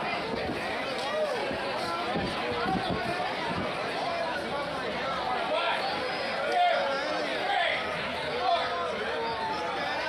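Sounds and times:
crowd chattering and calling out: 0.0 - 10.0.

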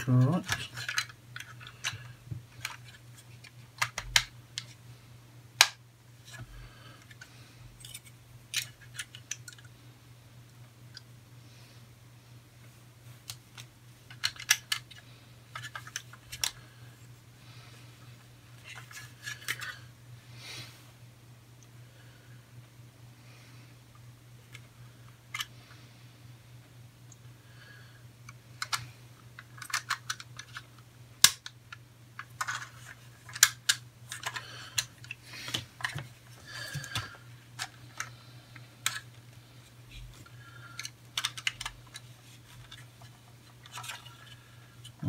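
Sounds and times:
plastic parts clicking and snapping: 0.0 - 4.8, 5.6 - 9.7, 13.2 - 16.6, 25.3 - 25.5, 28.3 - 38.2, 38.8 - 45.0
low steady hum: 0.0 - 45.0.

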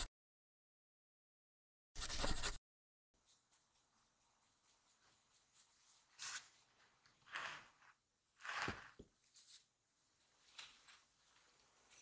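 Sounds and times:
rustling scrapes: 3.3 - 9.7.

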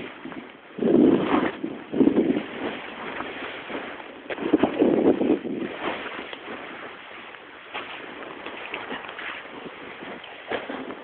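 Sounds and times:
snowboard sliding through powder snow: 0.0 - 11.0
wind on microphone: 0.0 - 11.0.

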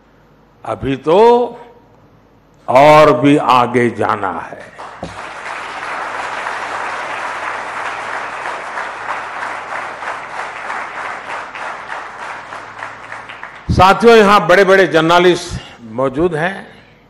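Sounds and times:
audience applauding: 4.8 - 14.3.

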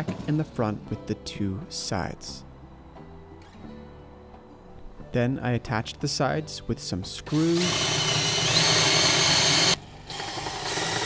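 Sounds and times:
cordless drill driving a screw: 7.3 - 11.0.

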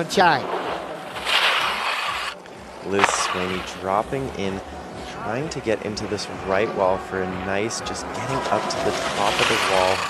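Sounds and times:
skis scraping over hard snow: 0.4 - 3.8, 8.2 - 10.0.

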